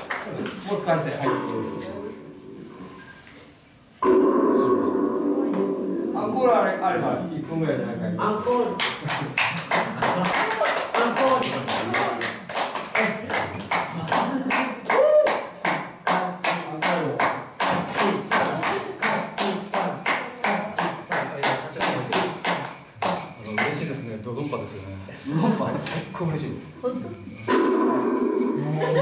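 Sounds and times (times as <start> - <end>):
high jingling ring: 1.2 - 4.0, 17.5 - 29.0.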